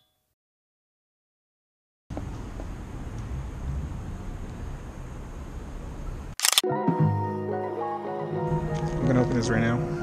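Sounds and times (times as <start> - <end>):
camera shutter clicks: 6.4 - 6.6
music: 6.6 - 10.0.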